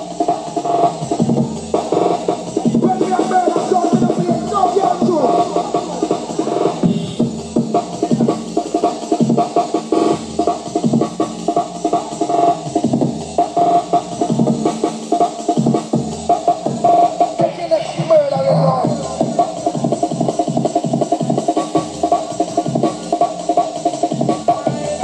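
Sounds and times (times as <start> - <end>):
electronic dance music: 0.0 - 25.0.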